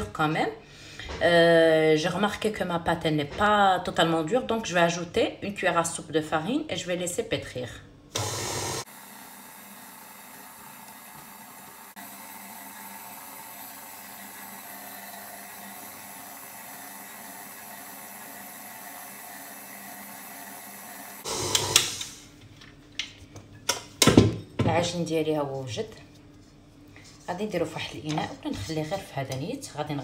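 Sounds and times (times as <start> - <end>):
stand mixer kneading dough: 8.2 - 21.9.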